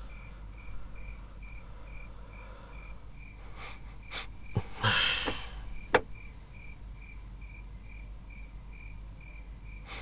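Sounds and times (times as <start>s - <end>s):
cricket chirping: 0.0s - 10.0s
sharp knocks: 4.6s - 6.1s.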